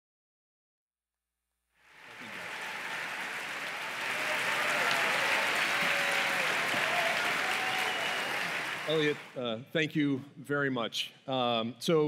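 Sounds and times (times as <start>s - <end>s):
audience applauding: 1.9s - 9.4s.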